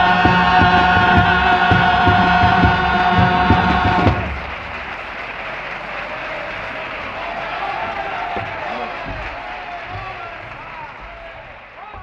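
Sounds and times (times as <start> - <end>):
male chorus singing: 0.0 - 4.5
audience applause: 0.0 - 12.0
steady drum beats: 0.0 - 12.0.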